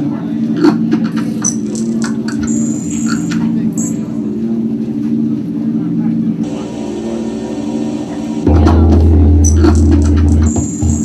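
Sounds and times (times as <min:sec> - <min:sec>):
low synthesizer drone: 0:01.5 - 0:11.0
bright hissy synth layer: 0:06.4 - 0:09.5.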